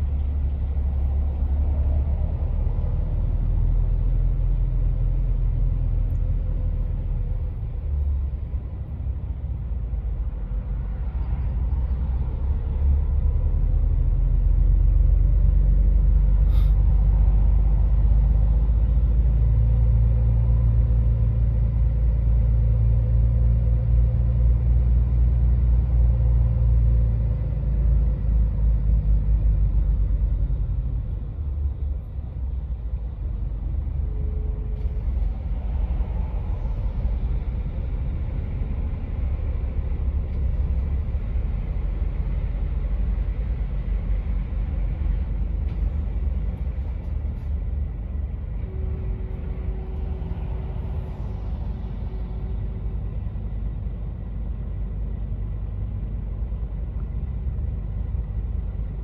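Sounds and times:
truck diesel engine rumbling: 0.0s - 59.0s.

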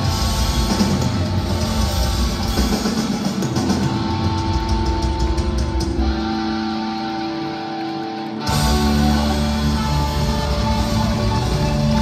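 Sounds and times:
guitar sustained notes: 0.0s - 12.0s
live rock band playing: 0.0s - 12.0s.

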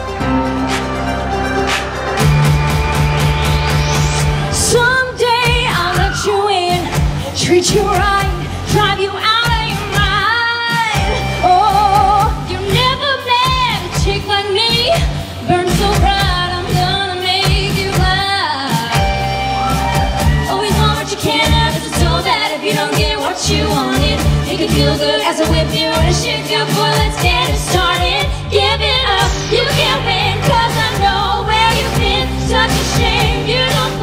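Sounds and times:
backing music with steady beat: 0.0s - 34.0s
women singing a pop duet: 4.5s - 34.0s.

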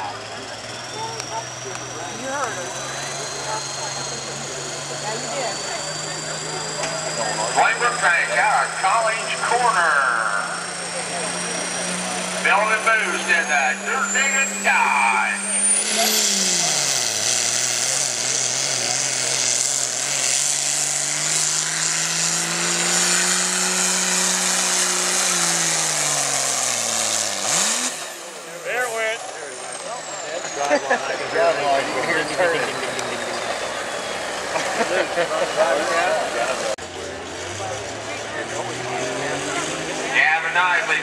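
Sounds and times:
diesel engine labouring: 0.0s - 41.0s.

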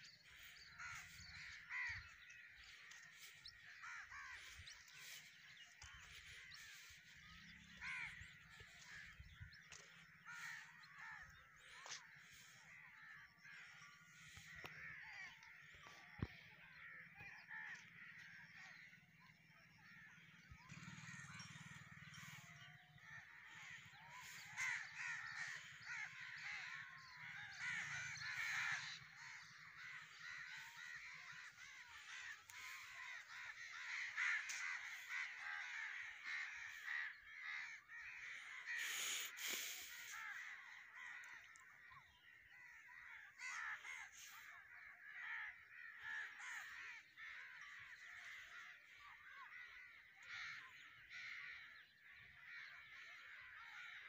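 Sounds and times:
crows cawing: 0.0s - 54.0s.

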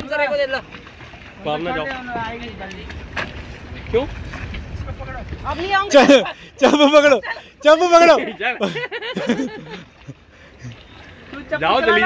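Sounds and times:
wind rumbling on microphone: 0.0s - 6.6s.

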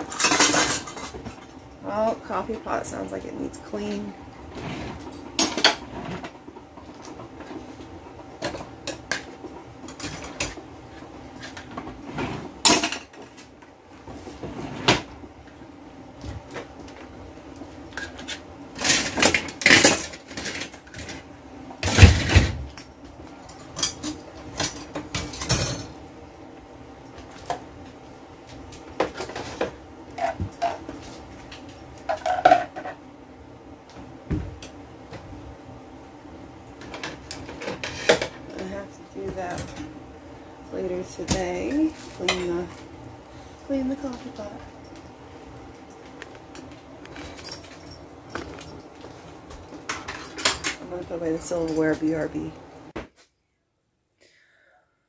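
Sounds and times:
dishes clinking and clattering: 0.0s - 1.6s, 4.8s - 7.6s, 11.4s - 13.3s, 29.0s - 33.0s
faint steady hum: 0.0s - 55.0s.

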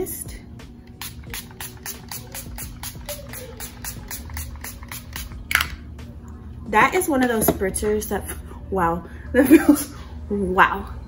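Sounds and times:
spray bottle hissing: 1.0s - 5.4s.

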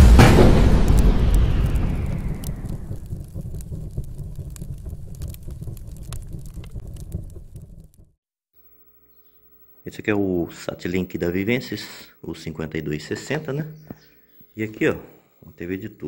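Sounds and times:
cinematic boom with deep rumble: 0.0s - 8.2s.

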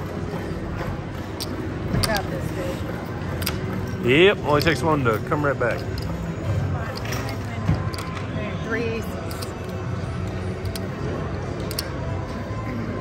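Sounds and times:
background music: 0.0s - 13.0s.

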